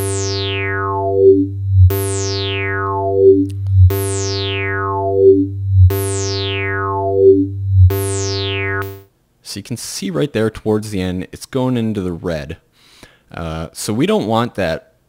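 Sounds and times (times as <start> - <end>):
steady synth bass: 0.0 - 9.1
synthesizer tone with filter sweep: 0.0 - 9.1.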